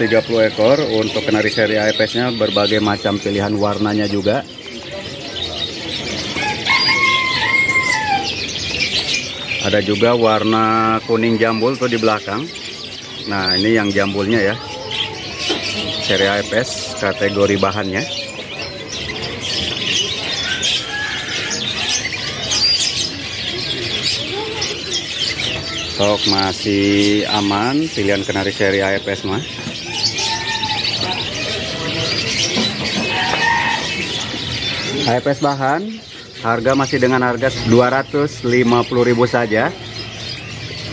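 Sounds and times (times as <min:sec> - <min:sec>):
birds fluttering: 0:00.0 - 0:40.9
canaries chirping: 0:00.0 - 0:40.9
long rising and falling bird call: 0:04.6 - 0:09.6, 0:29.4 - 0:35.1.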